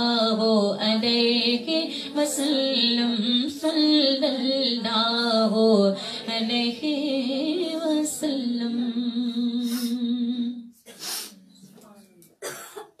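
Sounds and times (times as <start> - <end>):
woman singing into microphone: 0.0 - 10.7.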